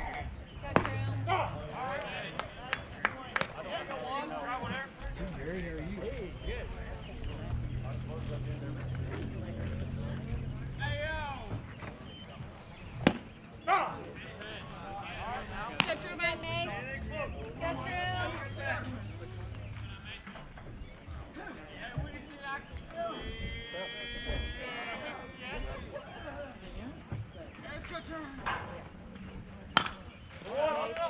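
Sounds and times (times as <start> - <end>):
players and spectators calling out: 0.0 - 12.8, 13.4 - 28.5.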